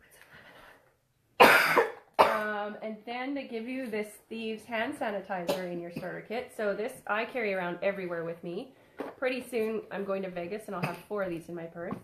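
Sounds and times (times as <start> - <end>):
woman coughing: 1.4 - 2.6, 5.5 - 6.2, 10.8 - 11.0.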